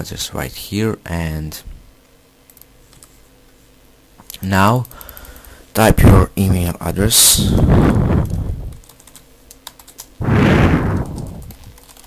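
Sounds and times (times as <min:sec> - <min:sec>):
keyboard typing clicks: 0:04.8 - 0:05.4, 0:08.8 - 0:10.1, 0:11.1 - 0:12.0
low rumble: 0:10.2 - 0:11.8.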